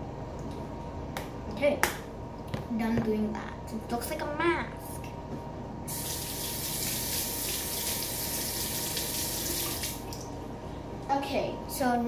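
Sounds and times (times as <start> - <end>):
water running into sink: 5.9 - 10.3.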